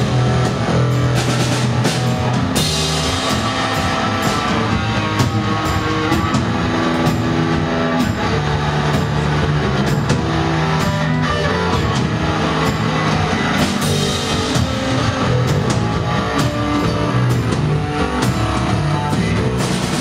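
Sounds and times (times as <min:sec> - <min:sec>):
drum kit: 0:00.0 - 0:20.0
electric guitar: 0:00.0 - 0:20.0.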